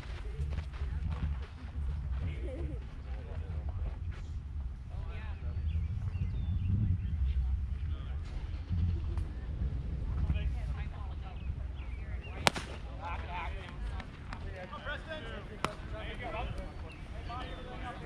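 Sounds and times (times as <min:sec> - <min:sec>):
spectators chatting: 0:00.0 - 0:05.8, 0:06.4 - 0:18.0
wind rumble on microphone: 0:00.0 - 0:14.7
baseball hitting catcher's mitt crack: 0:12.4 - 0:12.8, 0:15.6 - 0:15.9.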